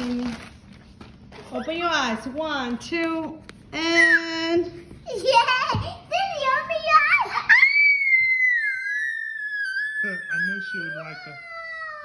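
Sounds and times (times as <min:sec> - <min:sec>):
girl squealing with delight: 0:07.4 - 0:12.0.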